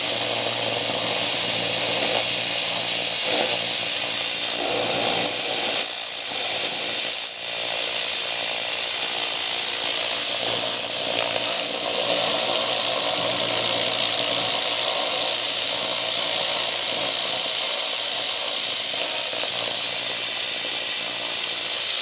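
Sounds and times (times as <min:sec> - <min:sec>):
laser cleaner hissing: 0:00.0 - 0:22.0.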